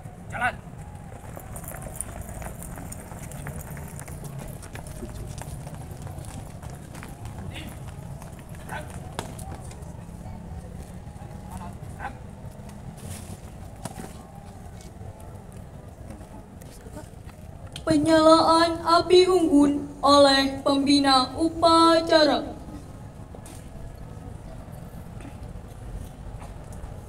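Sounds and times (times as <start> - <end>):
faint voices: 0.0 - 27.0
running footsteps on earth: 0.7 - 17.9
low background rumble: 15.0 - 27.0.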